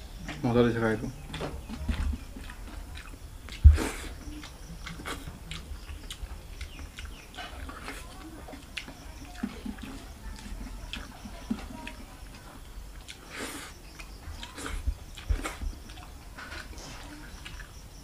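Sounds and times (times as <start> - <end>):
person chewing with lip smacks: 1.3 - 12.4, 13.0 - 17.8
breathy mouth sounds: 2.1 - 8.2.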